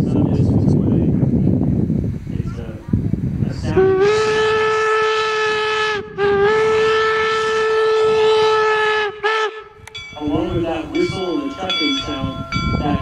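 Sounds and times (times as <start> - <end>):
steam whistle blowing: 3.7 - 10.1.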